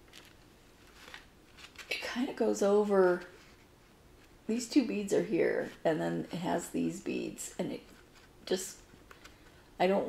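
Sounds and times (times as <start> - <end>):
faint rustling: 0.0 - 2.1.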